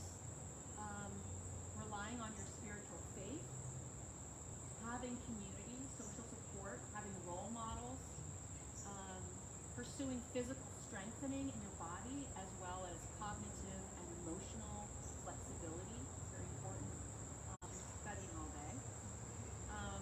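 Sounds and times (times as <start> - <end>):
insects chirring: 0.0 - 20.0.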